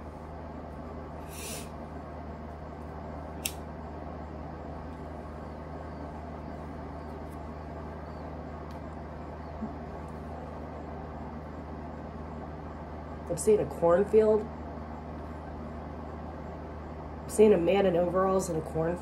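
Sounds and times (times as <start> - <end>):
low room hum: 0.0 - 19.0
short hiss: 1.2 - 1.7
sharp click: 3.4 - 3.6.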